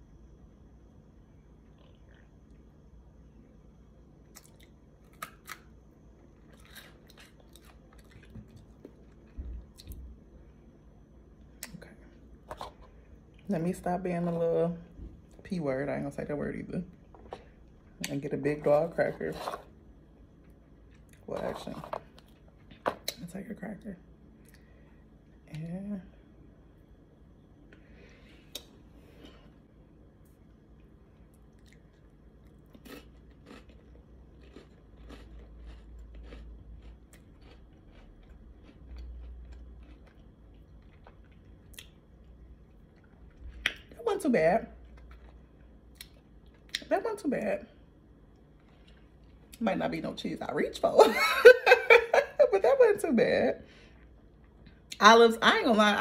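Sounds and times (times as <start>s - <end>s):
faint chewing of bread: 4.2s - 10.1s, 30.3s - 44.0s, 44.8s - 46.9s, 48.2s - 49.6s.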